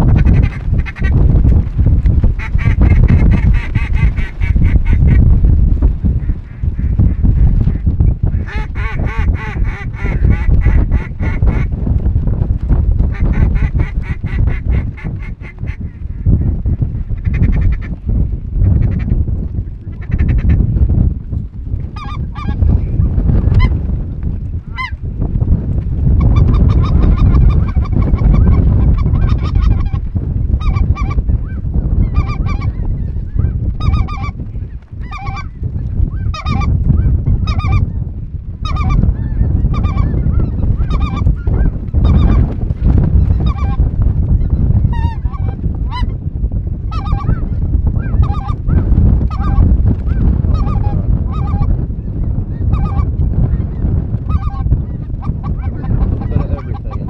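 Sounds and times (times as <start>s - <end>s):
steady low rumble: 0.0s - 57.0s
geese honking in flight: 0.1s - 1.2s, 2.4s - 5.2s, 6.2s - 11.7s, 22.0s - 22.7s, 24.7s - 25.0s, 26.2s - 30.0s, 30.6s - 34.4s, 35.0s - 35.6s, 36.2s - 36.7s, 37.4s - 37.9s, 38.6s - 42.4s, 43.2s - 43.8s, 44.9s - 46.2s, 46.9s - 49.6s, 50.5s - 51.7s, 52.7s - 53.1s, 53.7s - 57.0s.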